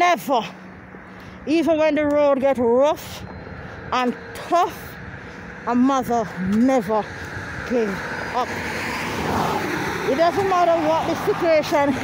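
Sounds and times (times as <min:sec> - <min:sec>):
passing vehicle road noise: 0:00.0 - 0:12.0.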